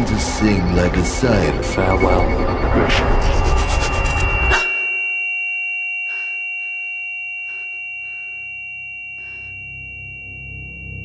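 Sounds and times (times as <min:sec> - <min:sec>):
low drone: 0:00.0 - 0:05.2
high ringing tones: 0:00.0 - 0:11.0.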